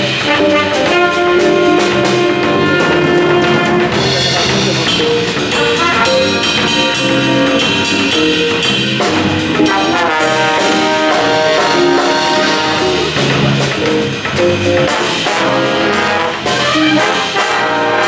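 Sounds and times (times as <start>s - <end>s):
drum kit: 0.0s - 18.0s
jazz big band playing: 0.0s - 18.0s.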